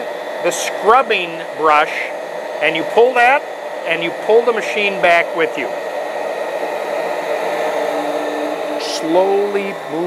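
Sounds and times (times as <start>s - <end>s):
carpet cleaner vacuum motor: 0.0s - 10.0s
rotating scrubbing brush: 0.0s - 10.0s.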